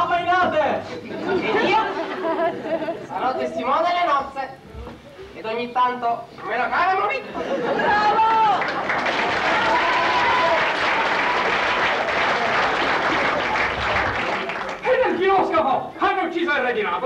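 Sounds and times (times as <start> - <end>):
audience applauding: 7.9 - 15.3.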